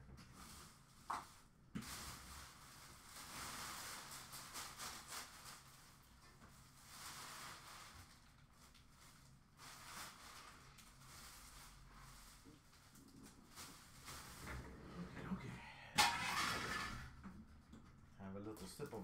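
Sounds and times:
trash rustling out of bin: 1.8 - 15.4.

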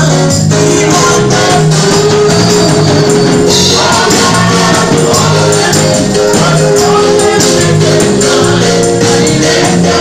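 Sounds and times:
group gospel singing: 0.0 - 10.0
tambourine beat: 0.0 - 10.0.

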